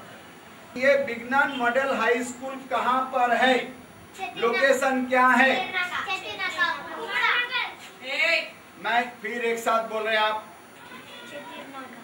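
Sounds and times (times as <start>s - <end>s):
children's voices answering: 4.1s - 8.0s, 10.7s - 12.0s.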